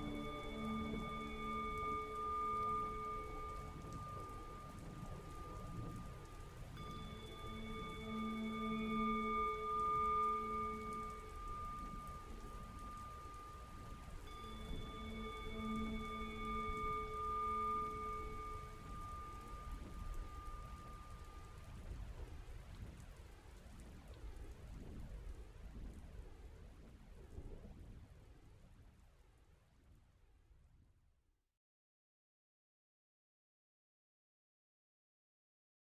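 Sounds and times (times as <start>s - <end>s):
singing bowl ringing: 0.0s - 21.8s
steady rain: 0.0s - 30.2s.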